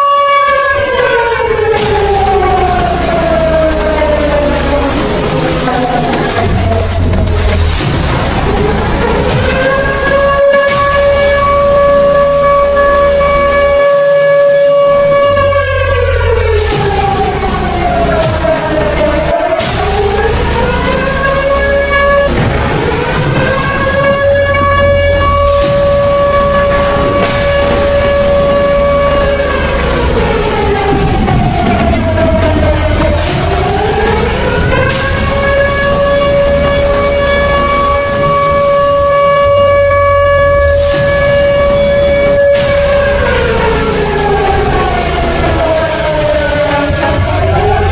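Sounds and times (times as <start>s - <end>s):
floodwater rushing rumble: 0.0s - 47.9s
low bass notes: 0.0s - 47.9s
siren-like tone: 0.0s - 47.9s.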